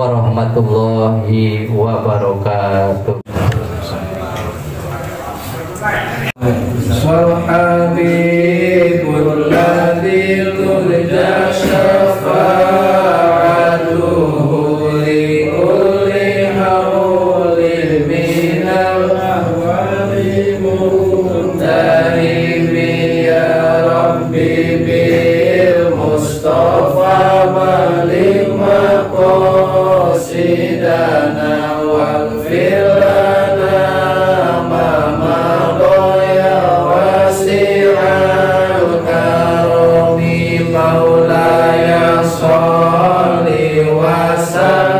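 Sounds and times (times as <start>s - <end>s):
men chanting a prayer: 0.0s - 44.9s.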